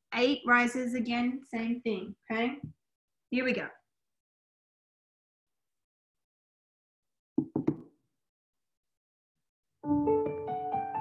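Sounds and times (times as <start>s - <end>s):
piano music: 9.8s - 11.0s.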